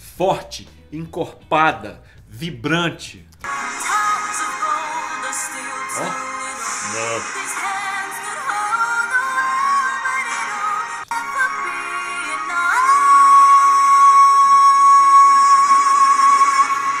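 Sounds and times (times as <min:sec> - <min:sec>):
backing music: 0:00.1 - 0:17.0
woman singing a power ballad: 0:03.5 - 0:17.0.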